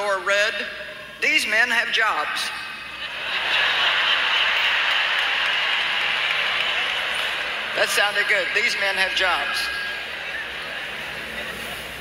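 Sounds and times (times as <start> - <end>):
large audience applauding: 3.3 - 10.9.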